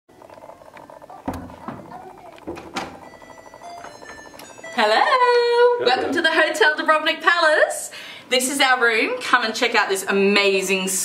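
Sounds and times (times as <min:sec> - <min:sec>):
door clicks and knocks: 0:01.2 - 0:03.2.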